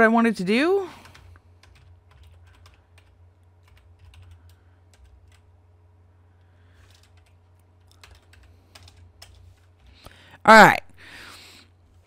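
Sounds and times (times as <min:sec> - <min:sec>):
low steady hum: 0:00.0 - 0:12.0
computer keyboard typing: 0:01.0 - 0:05.5, 0:06.8 - 0:10.1.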